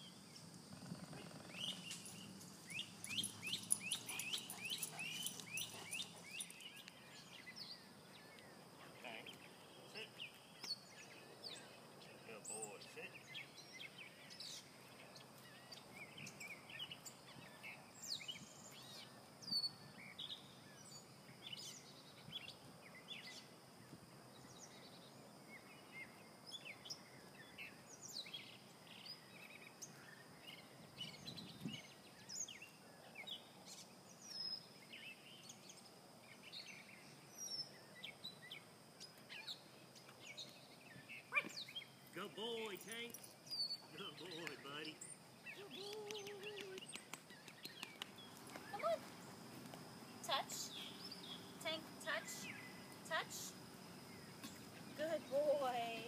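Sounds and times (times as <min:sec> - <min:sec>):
low steady hiss: 0:00.0 - 0:56.0
bird chirps and calls: 0:01.2 - 0:07.6, 0:42.6 - 0:49.0, 0:50.3 - 0:53.6.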